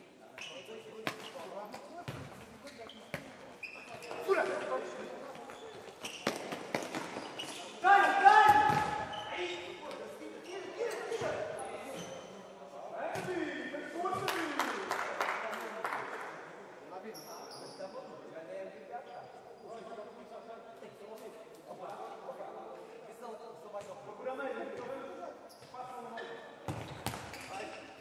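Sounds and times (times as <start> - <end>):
shoe squeaks: 0.3 - 4.8, 5.4 - 7.9, 8.7 - 12.5, 17.1 - 18.2, 25.4 - 28.0.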